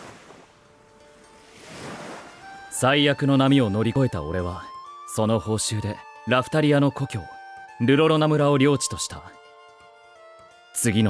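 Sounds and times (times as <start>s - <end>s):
sea waves washing in: 0.0s - 2.7s.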